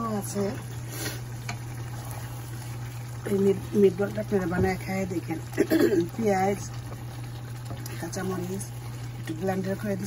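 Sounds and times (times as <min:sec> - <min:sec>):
curry bubbling in a pan: 0:00.0 - 0:10.0.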